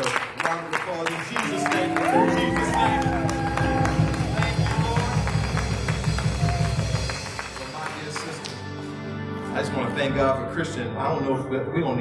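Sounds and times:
church band music: 0:00.8 - 0:12.0
fast heavy drum kit: 0:02.0 - 0:08.3.

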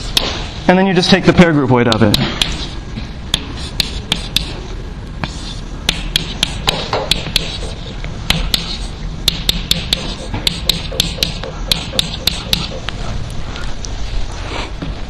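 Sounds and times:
low steady hum: 0:00.0 - 0:15.0
chalk tapping and scratching: 0:01.9 - 0:13.2.

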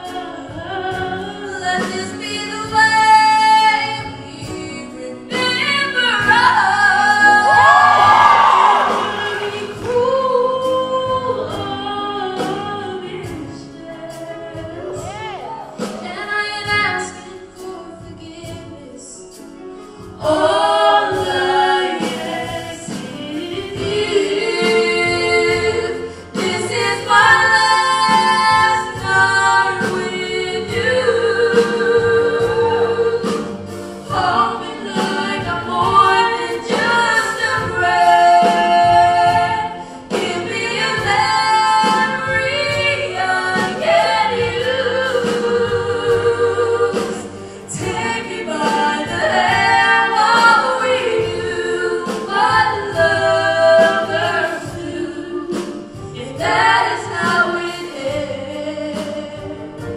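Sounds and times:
women singing a duet: 0:00.0 - 0:59.9.

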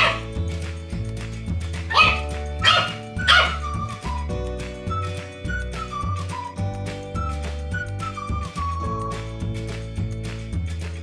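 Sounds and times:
puppy barking: 0:00.0 - 0:00.3, 0:01.9 - 0:03.8
background music: 0:00.0 - 0:11.0.

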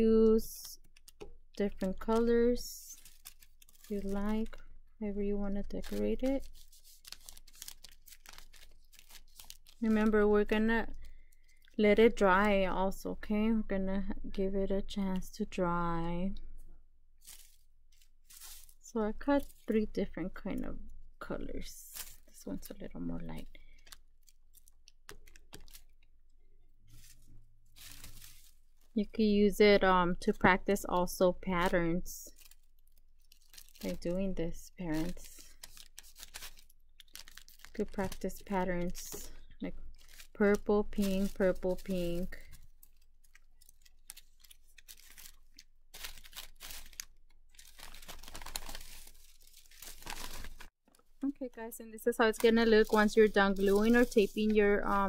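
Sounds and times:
paper rustling: 0:02.9 - 0:04.6, 0:05.7 - 0:10.2, 0:17.2 - 0:18.8, 0:23.7 - 0:26.0, 0:26.9 - 0:28.9, 0:35.0 - 0:50.7, 0:52.3 - 0:55.0.

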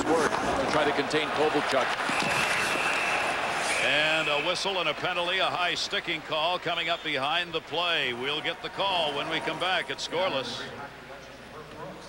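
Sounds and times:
arena crowd noise: 0:00.0 - 0:12.0
referee's whistle blast: 0:02.1 - 0:04.8.

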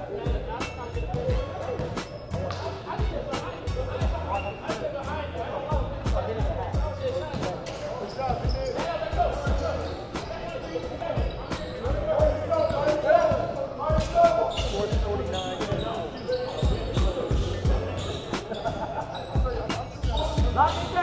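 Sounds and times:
voices echoing in gym: 0:00.0 - 0:21.0.

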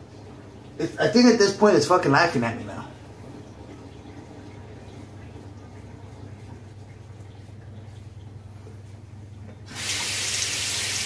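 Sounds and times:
water running into sink: 0:09.6 - 0:11.0.

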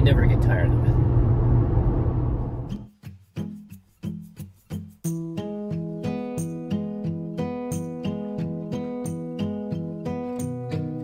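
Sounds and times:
car cabin road and engine drone: 0:00.0 - 0:02.8
strummed acoustic guitar: 0:02.7 - 0:11.0.

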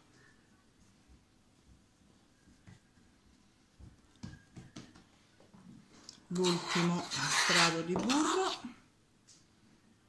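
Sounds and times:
soft taps of hands on dough: 0:02.4 - 0:03.2, 0:03.8 - 0:05.1.

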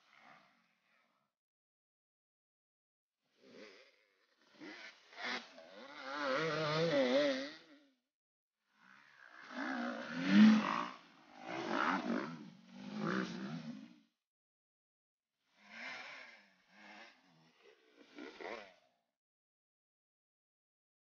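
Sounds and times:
dirt bike engines revving: 0:04.7 - 0:07.5, 0:09.6 - 0:13.8.

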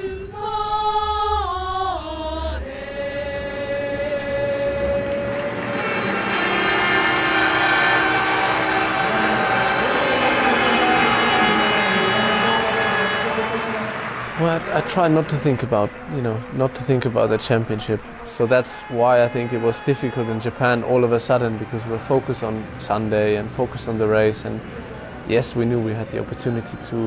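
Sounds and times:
choir singing sustained notes: 0:00.0 - 0:16.4.

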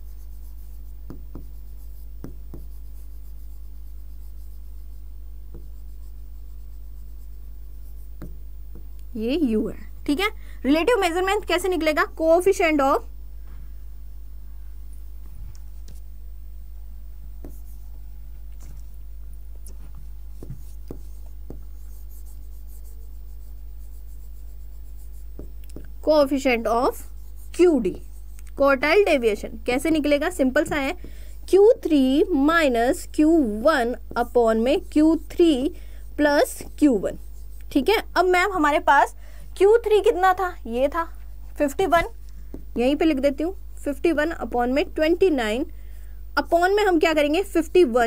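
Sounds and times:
marker writing on whiteboard: 0:00.0 - 0:08.9, 0:17.4 - 0:17.9, 0:19.8 - 0:29.2, 0:32.9 - 0:38.6
steady low hum: 0:00.0 - 0:48.0.

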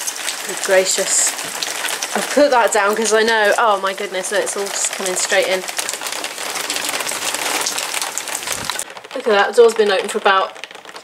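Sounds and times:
rain and hail on concrete: 0:00.0 - 0:11.0.

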